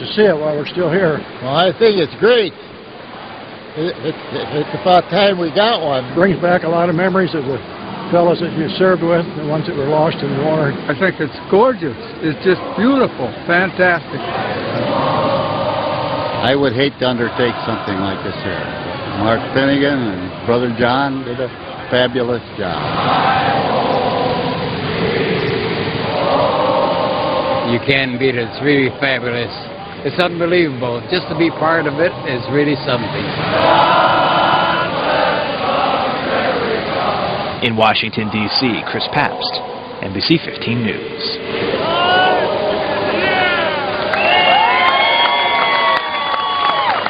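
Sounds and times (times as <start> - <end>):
many indistinct voices: 0.0 - 44.9
constant hiss: 0.0 - 47.0
long held calls: 11.1 - 20.5, 21.5 - 47.0
crowd cheering and whooping: 41.5 - 47.0.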